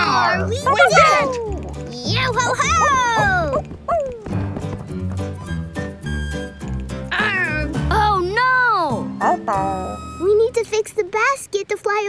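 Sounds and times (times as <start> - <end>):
background music: 0.0 - 11.1.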